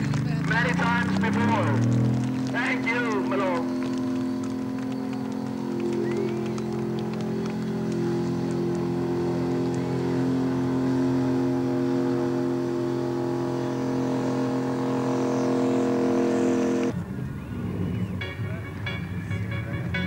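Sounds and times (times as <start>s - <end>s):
truck engine running: 0.0s - 20.0s.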